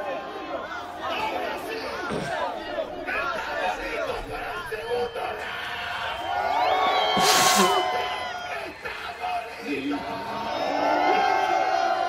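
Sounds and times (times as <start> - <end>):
crowd cheering and whooping: 5.2 - 12.0.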